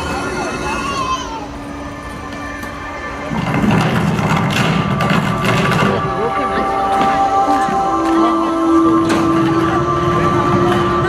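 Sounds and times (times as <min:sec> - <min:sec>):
background music: 0:00.0 - 0:11.0
crowd talking indistinctly: 0:00.0 - 0:11.0.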